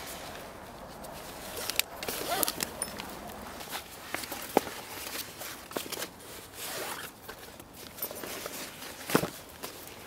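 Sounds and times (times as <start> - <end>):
fabric rustling: 0.0 - 10.0.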